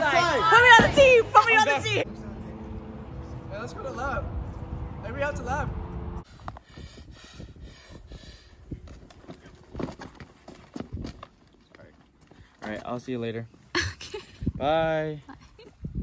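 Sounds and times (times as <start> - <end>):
footsteps on asphalt: 8.8 - 13.7.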